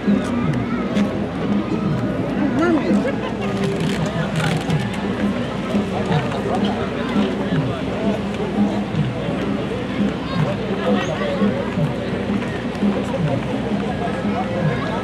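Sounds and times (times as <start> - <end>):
overlapping indistinct chatter: 0.0 - 15.0.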